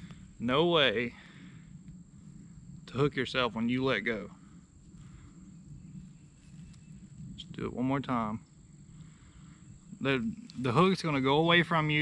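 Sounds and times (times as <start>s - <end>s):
low uneven rumble: 0.0s - 12.0s
high-pitched insect trill: 2.0s - 12.0s.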